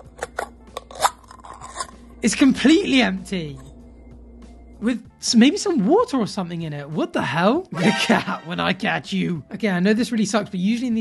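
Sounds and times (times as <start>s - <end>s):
can ring-pull peeling open: 0.0s - 2.0s.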